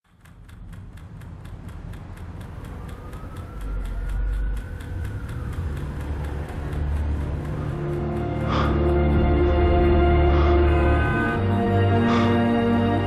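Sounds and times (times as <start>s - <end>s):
even ticking clicks: 0.0s - 10.5s
low rumble: 0.1s - 13.0s.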